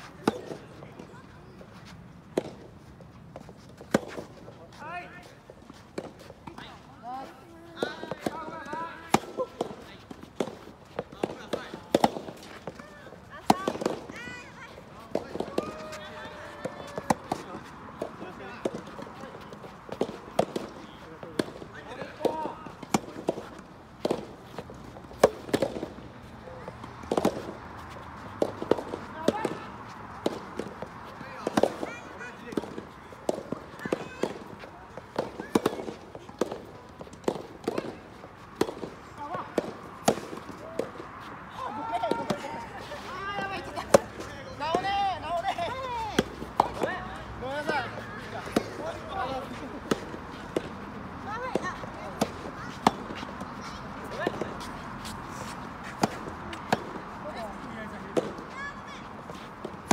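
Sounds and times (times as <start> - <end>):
rackets hitting balls: 7.8 - 12.8, 15.1 - 27.6, 28.3 - 41.0.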